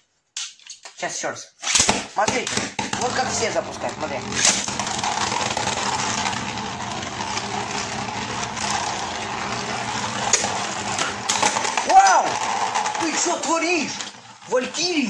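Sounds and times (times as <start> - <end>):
spinning tops scraping whir: 2.6 - 15.0
person shouting: 11.8 - 12.4.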